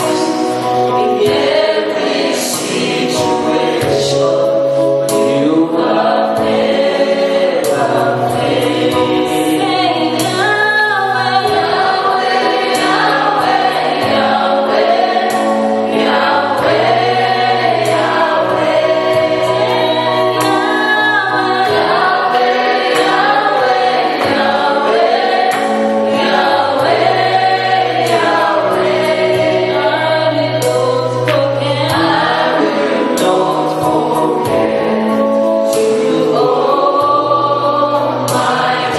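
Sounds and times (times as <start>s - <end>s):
gospel choir singing: 0.0s - 38.9s.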